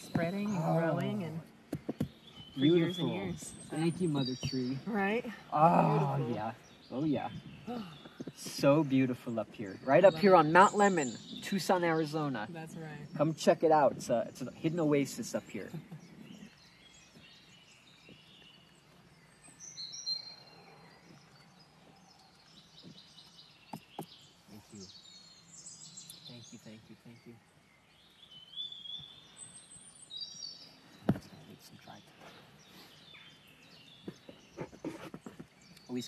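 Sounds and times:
birds chirping: 0:00.0 - 0:36.0
faint forest ambience: 0:00.0 - 0:36.0.

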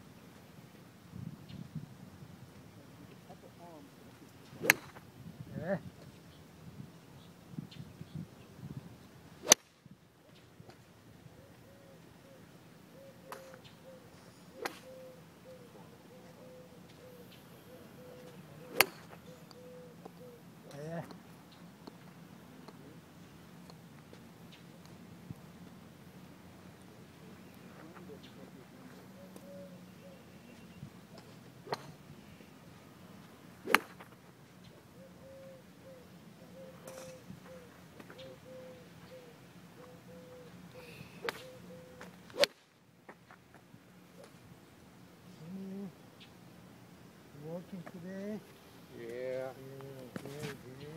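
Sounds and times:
golf clubs striking balls: 0:04.6 - 0:05.0, 0:18.7 - 0:19.2, 0:33.6 - 0:34.2.

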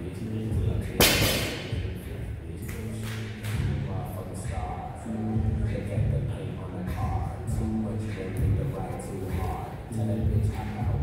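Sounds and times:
barbell dropped on rubber floor: 0:01.0 - 0:01.8.

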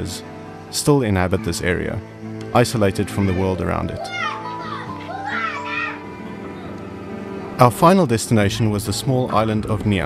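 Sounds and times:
soft background music: 0:00.0 - 0:10.0
children calling out: 0:03.0 - 0:07.0.

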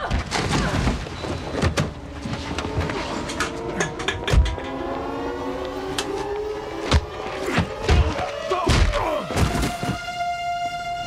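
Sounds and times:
music with sustained tones: 0:01.4 - 0:11.0.

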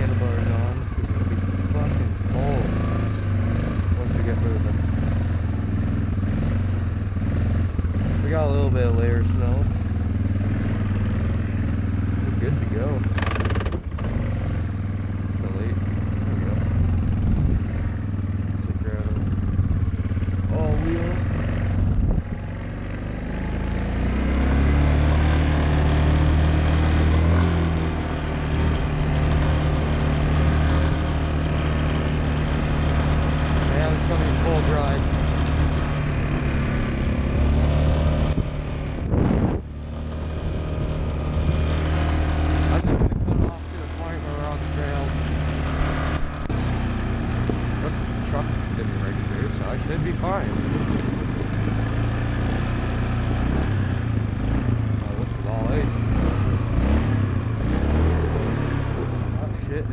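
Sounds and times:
atv engine running: 0:00.0 - 0:59.9.

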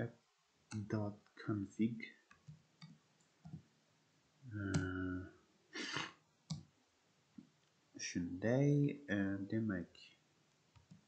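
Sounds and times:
breathy noise: 0:05.8 - 0:06.1.

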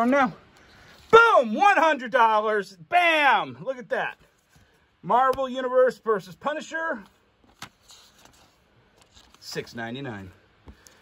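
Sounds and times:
paper rustling: 0:06.9 - 0:11.0.

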